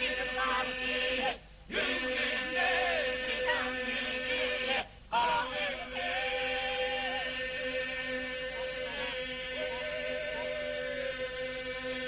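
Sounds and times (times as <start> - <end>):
group polyphonic folk singing: 0.0 - 12.0.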